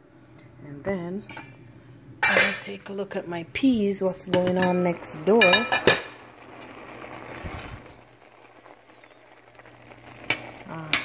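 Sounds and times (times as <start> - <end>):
pot of beans boiling: 1.4 - 11.0.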